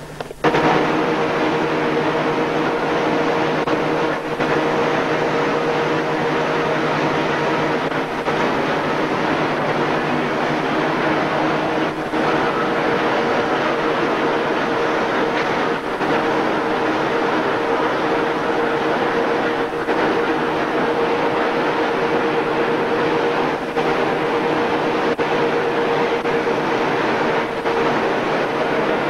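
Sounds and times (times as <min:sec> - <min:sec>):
textile machinery running: 0:00.0 - 0:29.0.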